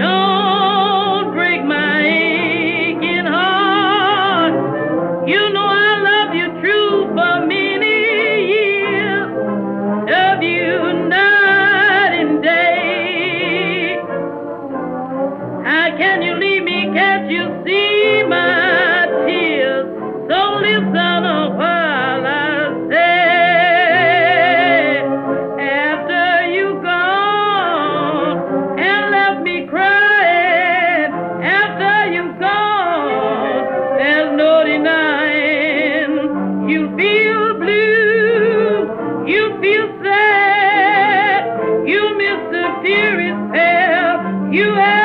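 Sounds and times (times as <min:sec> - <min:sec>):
woman singing with vibrato: 0:00.0 - 0:04.6, 0:05.2 - 0:09.4, 0:10.1 - 0:14.1, 0:15.6 - 0:45.0
small jazz band: 0:00.0 - 0:45.0.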